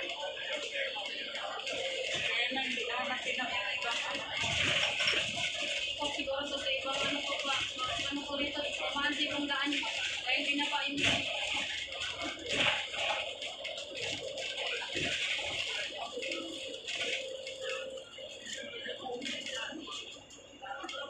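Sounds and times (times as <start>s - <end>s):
indistinct voices talking: 0.0s - 21.0s.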